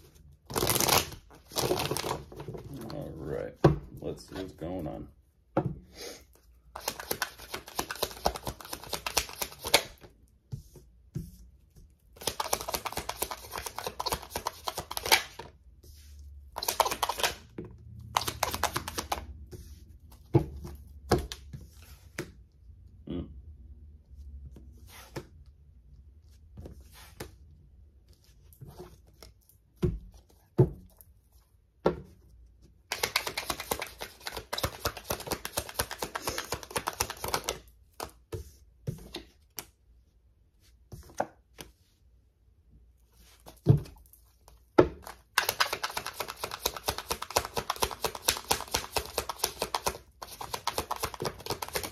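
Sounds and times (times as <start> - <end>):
cards being shuffled: 0.5 - 3.0, 6.7 - 10.1, 12.1 - 22.3, 32.9 - 38.2, 44.4 - 51.9
cards snapping and tapping: 6.8 - 10.1, 12.2 - 15.5, 16.6 - 17.5, 18.2 - 19.3, 32.9 - 38.2, 45.0 - 51.9.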